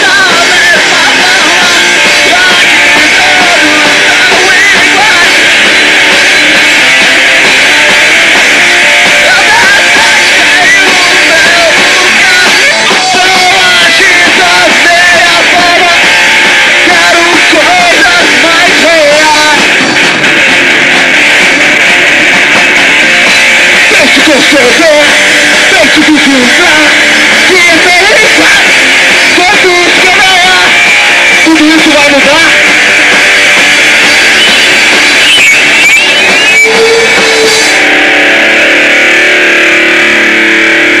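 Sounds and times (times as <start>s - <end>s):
punk rock band playing: 0.0s - 41.0s
held guitar chord ringing: 32.7s - 41.0s.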